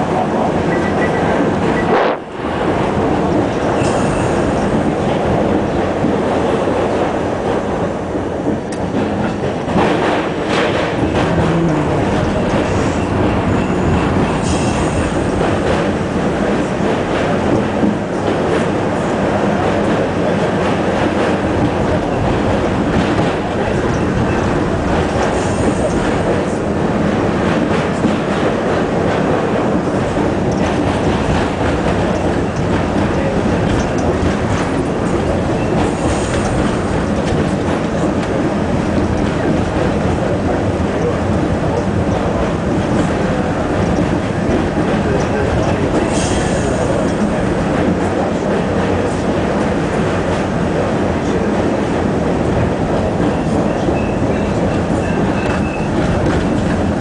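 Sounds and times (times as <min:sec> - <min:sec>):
train wheels rumbling on rails: 0:00.0 - 0:57.0
high train squeals: 0:53.4 - 0:56.2.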